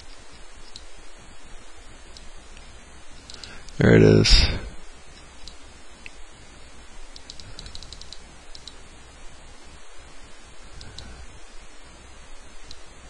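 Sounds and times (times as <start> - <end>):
faint hiss: 0.0 - 13.0
computer mouse clicking: 7.1 - 8.8, 10.8 - 11.2.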